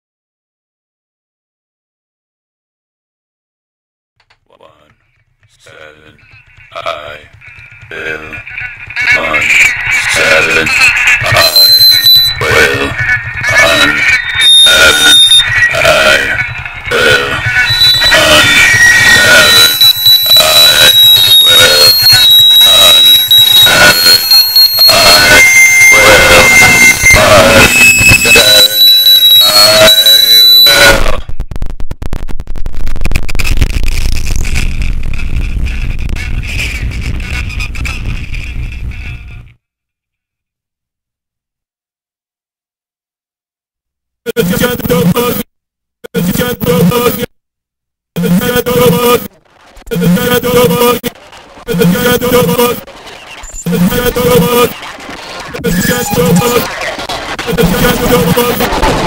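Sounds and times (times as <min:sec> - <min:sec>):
harsh pulsing noise music: 0:05.6 - 0:39.6, 0:48.2 - 0:59.0
shrill whistling tones: 0:09.5 - 0:31.0.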